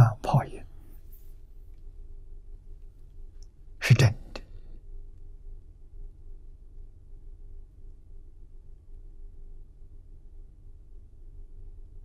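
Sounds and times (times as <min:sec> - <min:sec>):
elderly man speaking: 0:00.0 - 0:00.7, 0:03.8 - 0:04.5
faint low hum: 0:00.0 - 0:12.0.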